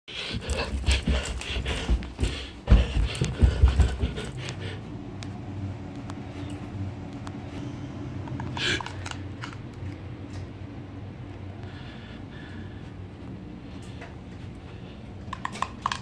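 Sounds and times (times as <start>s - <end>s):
person breathing hard: 0.1s - 5.0s, 11.5s - 15.2s
steady low hum: 0.1s - 16.0s
footsteps thudding up stairs: 0.3s - 4.5s.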